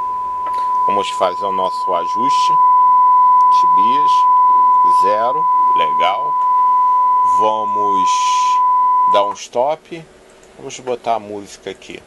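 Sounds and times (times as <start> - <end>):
steady test tone: 0.0 - 9.4.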